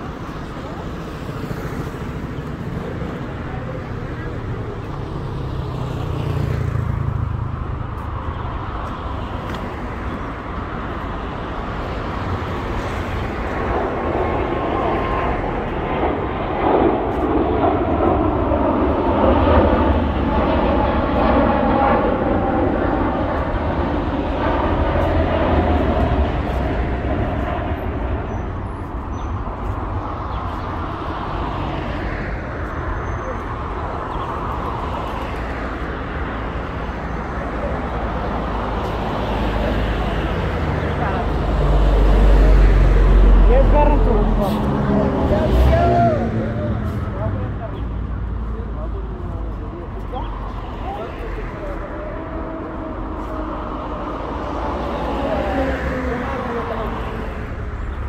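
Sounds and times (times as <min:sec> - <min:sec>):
road traffic: 0:00.0 - 0:58.0.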